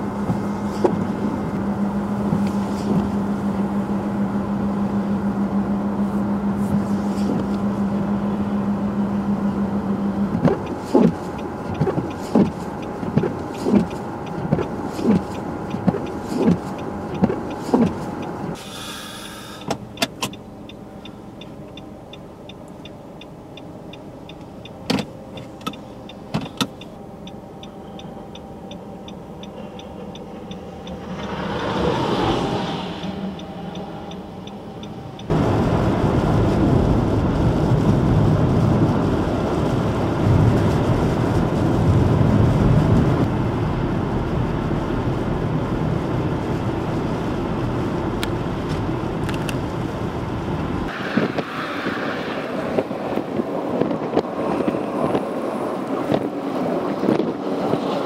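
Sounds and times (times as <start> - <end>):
windshield wipers thumping: 0.0 - 3.2, 10.3 - 18.6, 19.6 - 20.4, 24.4 - 27.0, 52.8 - 55.4
road and wind noise: 0.0 - 58.0
light ticking: 19.6 - 31.4, 33.0 - 35.3.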